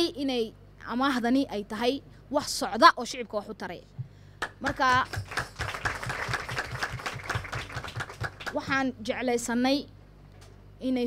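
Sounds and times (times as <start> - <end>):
group applauding: 4.4 - 8.7.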